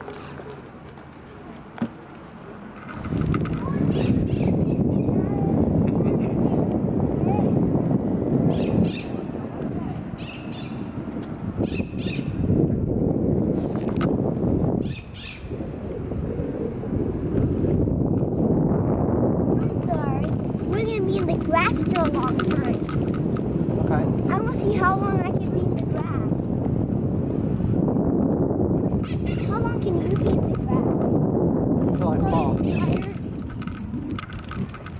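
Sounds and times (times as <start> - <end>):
voices: 0.0 - 8.0, 8.6 - 11.0, 19.6 - 23.2, 23.8 - 26.5, 29.1 - 33.8
wind rumbling on microphone: 0.0 - 34.9.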